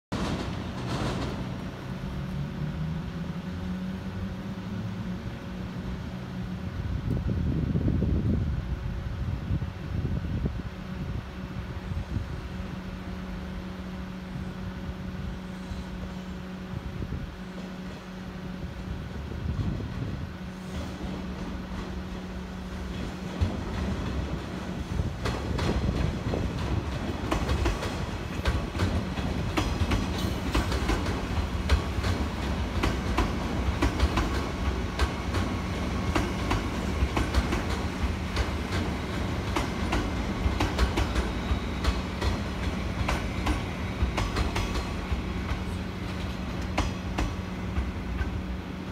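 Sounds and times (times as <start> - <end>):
electric train passing: 0.1 - 48.9
wheels clicking over rail joints: 21.0 - 48.5.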